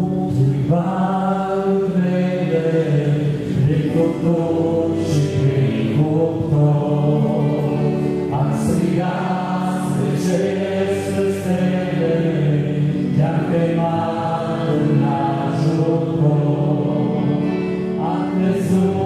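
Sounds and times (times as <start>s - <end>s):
men singing a slow hymn: 0.0s - 19.0s.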